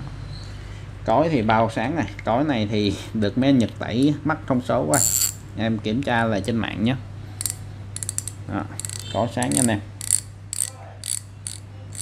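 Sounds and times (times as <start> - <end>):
fishing reel clicker ticking: 7.4 - 12.0.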